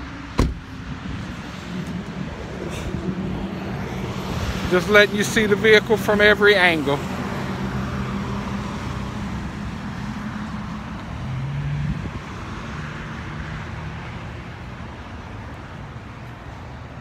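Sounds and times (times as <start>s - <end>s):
motor vehicles humming: 0.0s - 17.0s.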